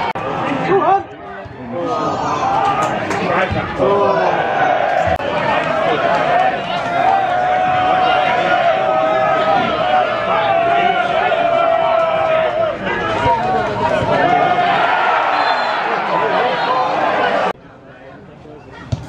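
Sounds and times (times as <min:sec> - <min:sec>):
crowd shouting and chatter: 0:00.0 - 0:19.0.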